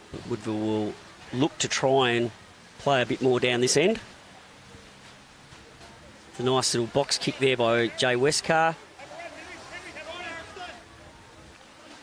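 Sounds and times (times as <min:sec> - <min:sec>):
low outdoor hiss: 0:00.0 - 0:12.0
distant voices shouting: 0:04.2 - 0:12.0.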